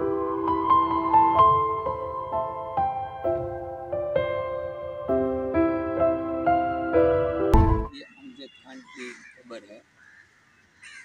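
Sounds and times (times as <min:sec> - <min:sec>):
crows cawing: 0:08.2 - 0:11.0.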